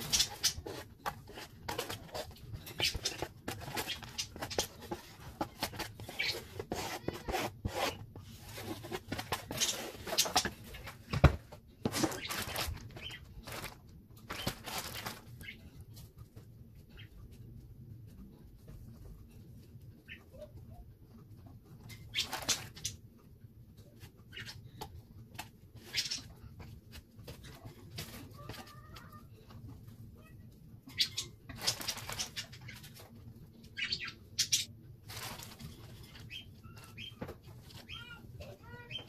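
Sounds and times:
marshmallows on foam plate: 0:00.0 - 0:39.0
plastic bag crinkling: 0:11.9 - 0:15.5.

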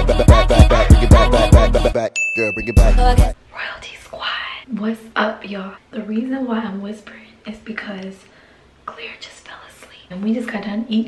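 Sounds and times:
woman whispering: 0:03.5 - 0:04.8, 0:08.9 - 0:10.6.

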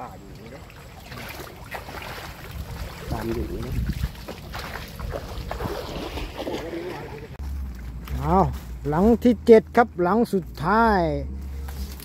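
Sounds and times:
water sloshing with steps: 0:00.2 - 0:08.1
leaves brushing: 0:11.4 - 0:12.0.

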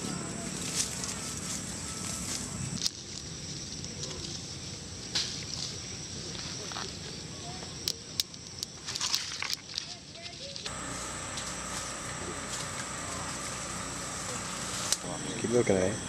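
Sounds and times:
steady high hum: 0:00.0 - 0:02.8, 0:10.7 - 0:16.0.

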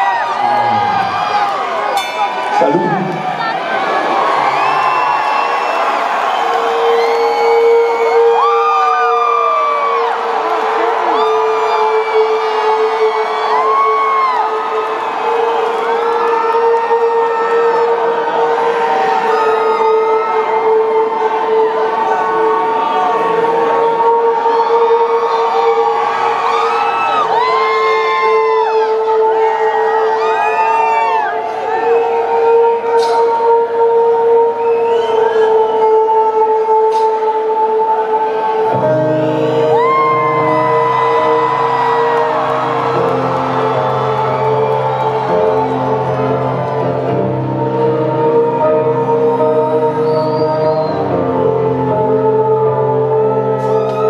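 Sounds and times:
concert crowd cheering: 0:00.0 - 0:54.0.

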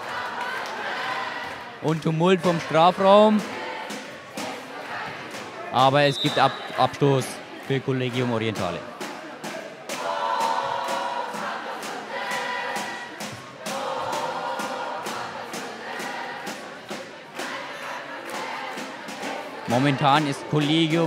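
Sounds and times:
crowd chanting: 0:00.0 - 0:21.0.

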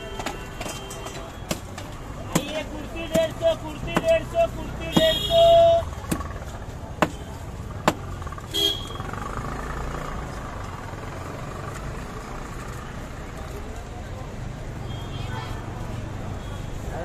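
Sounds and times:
traffic hum: 0:00.0 - 0:17.0
sharp knocks: 0:07.0 - 0:08.1.

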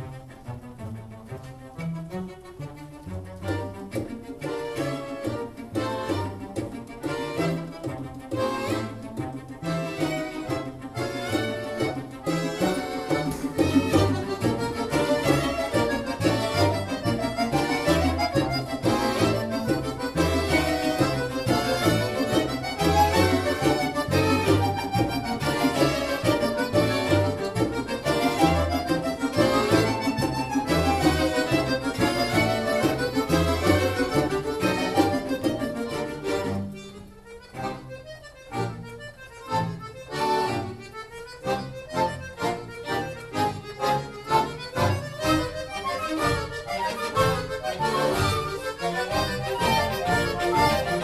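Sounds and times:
accordion orchestra playing: 0:00.0 - 0:51.0.

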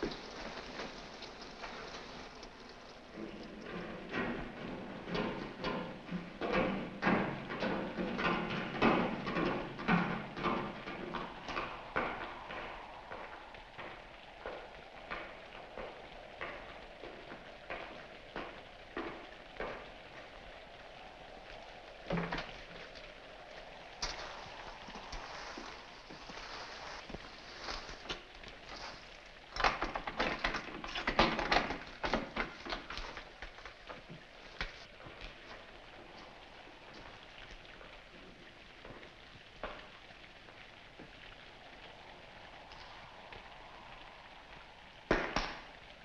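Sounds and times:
footsteps: 0:00.0 - 0:39.9
steady rain: 0:00.0 - 0:46.0.

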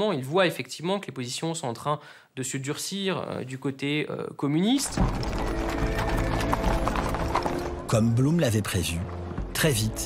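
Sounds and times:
horses' hooves clip-clopping: 0:04.8 - 0:09.3
background music of held notes: 0:05.0 - 0:10.0.

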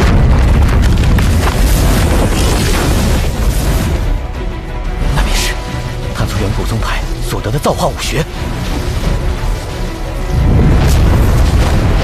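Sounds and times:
deep booming rumble: 0:00.0 - 0:03.4
crackling energy streaks: 0:00.0 - 0:04.0.

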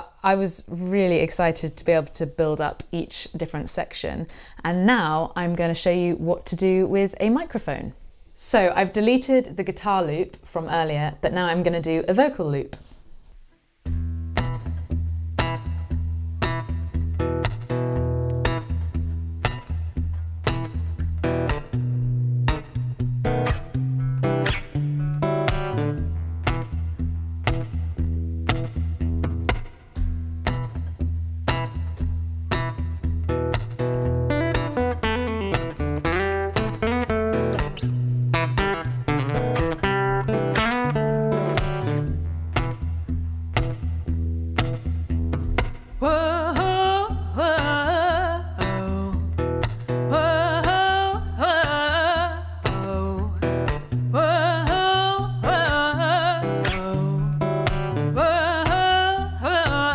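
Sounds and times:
plucked acoustic guitar: 0:13.8 - 0:59.9
percussive hits: 0:29.5 - 0:30.8, 0:44.6 - 0:46.8
repeating low bass: 0:44.9 - 0:47.4.

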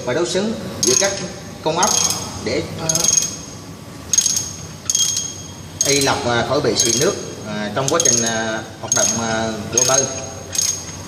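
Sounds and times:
ratchet wrench clicking: 0:01.8 - 0:02.2, 0:04.1 - 0:06.2, 0:07.8 - 0:11.0.

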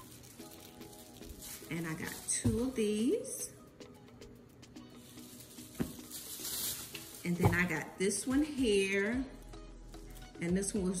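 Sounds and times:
dried grass rustling: 0:00.0 - 0:02.9, 0:04.8 - 0:07.8.

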